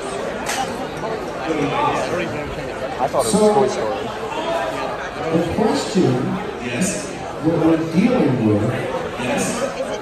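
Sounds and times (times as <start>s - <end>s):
indistinct chatter of voices: 0.0s - 10.0s.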